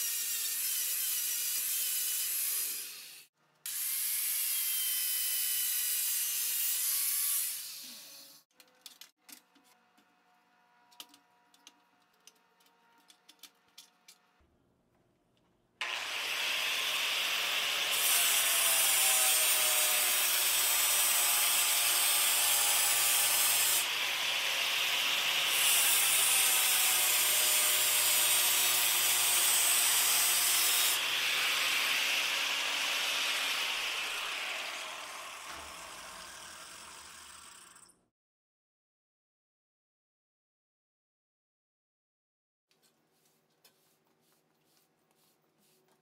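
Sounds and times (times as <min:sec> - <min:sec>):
angle grinder grinding steel: 0:00.0 - 0:08.4, 0:15.8 - 0:38.0.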